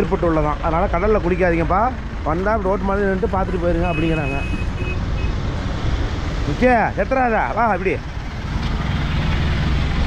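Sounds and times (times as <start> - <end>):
man talking: 0.0 - 4.6, 6.4 - 8.0
low rumble of vehicles: 0.0 - 10.0.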